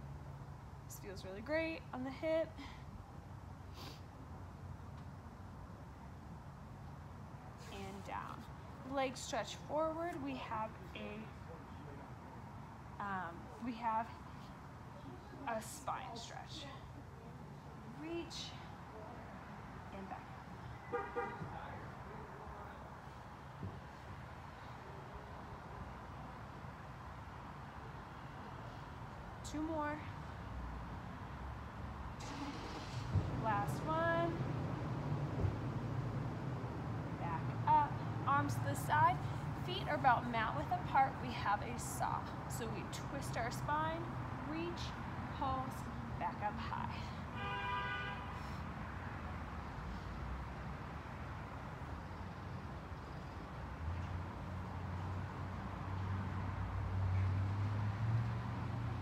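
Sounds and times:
low outdoor rumble: 0:00.0 - 0:47.4
faint steady background noise: 0:00.0 - 0:59.0.

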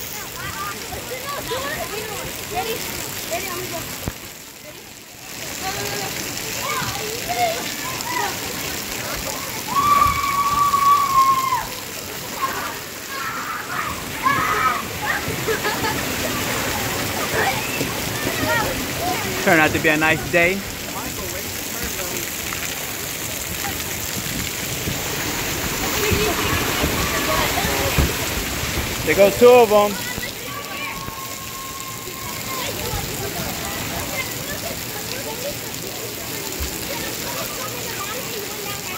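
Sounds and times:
faint voices: 0:00.0 - 0:38.9
water spraying and splashing: 0:00.0 - 0:38.9.

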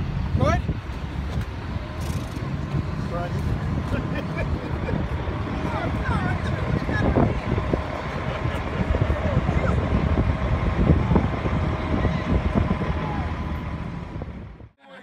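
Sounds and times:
low street rumble: 0:00.0 - 0:14.8.

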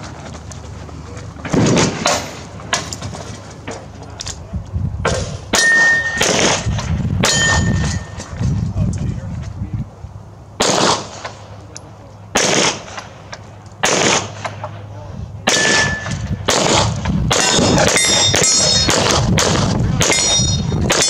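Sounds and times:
pistol shots: 0:01.5 - 0:02.4, 0:05.1 - 0:08.1, 0:10.6 - 0:11.4, 0:12.3 - 0:13.2, 0:13.8 - 0:14.6, 0:15.4 - 0:20.3
steel plates ringing: 0:05.5 - 0:06.3, 0:07.2 - 0:08.3, 0:15.6 - 0:16.3, 0:17.4 - 0:18.9, 0:20.0 - 0:20.8.

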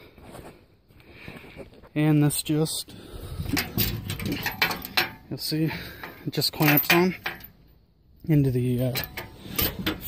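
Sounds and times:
metal plate knocking and scraping: 0:03.5 - 0:07.5, 0:08.9 - 0:10.0.

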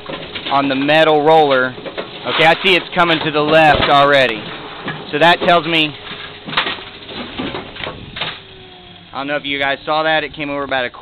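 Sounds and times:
faint steady hum: 0:00.0 - 0:11.0
irregular mechanical clatter: 0:00.0 - 0:11.0
pinsetter machine running: 0:00.0 - 0:11.0.

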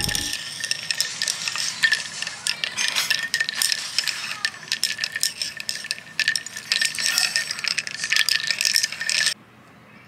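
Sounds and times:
coffee pouring: 0:00.0 - 0:09.4
ice cubes clinking and crackling: 0:00.0 - 0:09.4.

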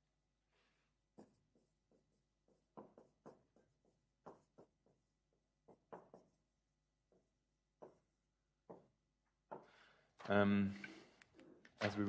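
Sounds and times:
marker writing on whiteboard: 0:00.9 - 0:09.8.

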